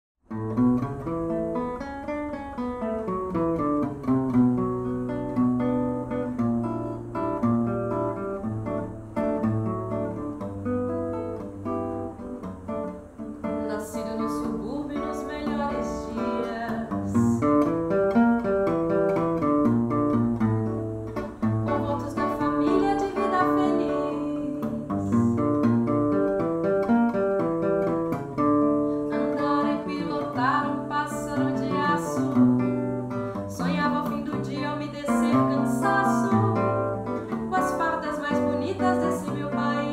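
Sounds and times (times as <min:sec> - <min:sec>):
nylon-string guitar playing samba: 0:00.2 - 0:39.9
woman singing: 0:13.4 - 0:17.7, 0:21.4 - 0:25.5, 0:29.1 - 0:39.9.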